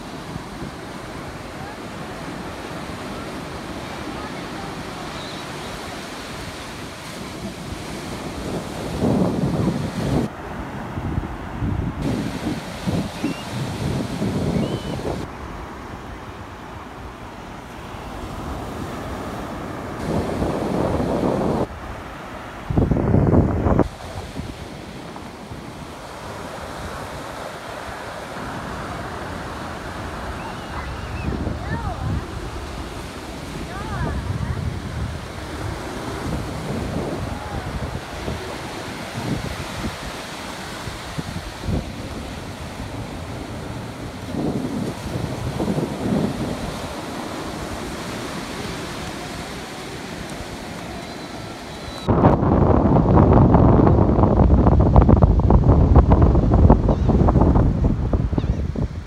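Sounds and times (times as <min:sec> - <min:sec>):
surf breaking on beach: 0:00.0 - 0:59.0
wind buffeting microphone: 0:00.0 - 0:59.0.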